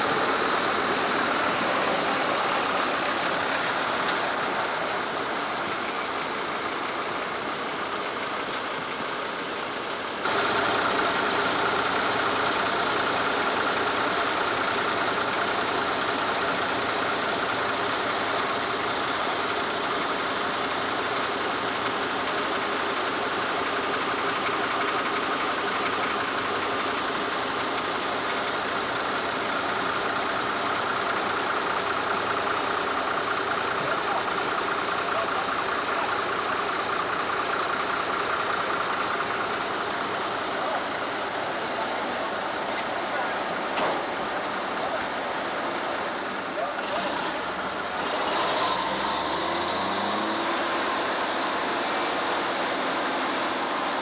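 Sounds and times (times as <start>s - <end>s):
diesel farm machinery engine drone: 0.0s - 54.0s.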